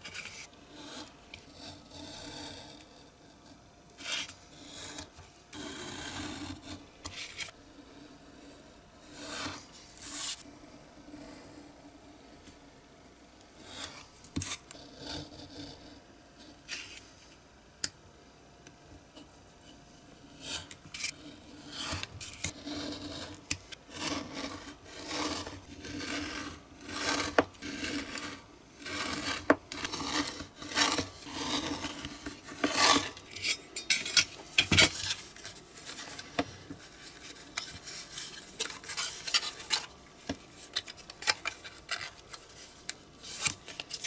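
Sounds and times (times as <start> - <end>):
card rustling and rubbing: 0.0 - 0.5, 9.2 - 10.5, 20.5 - 44.0
craft knife scraping card: 0.0 - 2.9, 4.0 - 7.6, 9.0 - 10.5, 13.6 - 15.8, 20.4 - 44.0.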